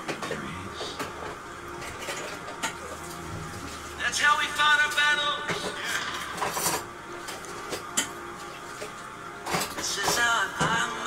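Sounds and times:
faint music: 0.0s - 11.0s
singing: 9.8s - 11.0s.

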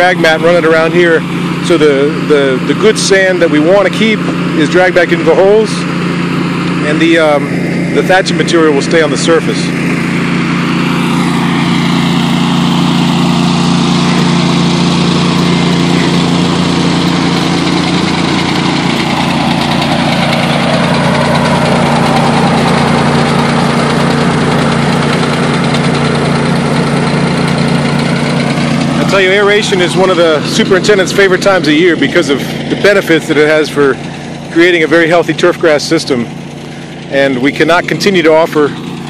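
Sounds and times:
core aerator engine running: 0.0s - 39.0s.

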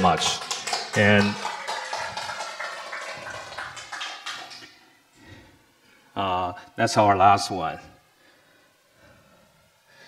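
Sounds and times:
audience applauding: 0.0s - 4.7s.

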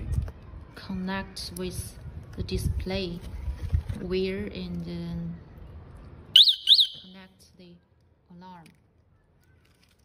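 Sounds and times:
alarm siren chirps: 6.4s - 7.1s.

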